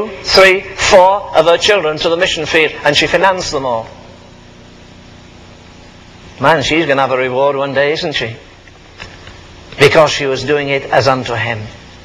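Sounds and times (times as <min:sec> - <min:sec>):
faint low hum: 0:00.0 - 0:12.0
recording hiss: 0:00.0 - 0:12.0.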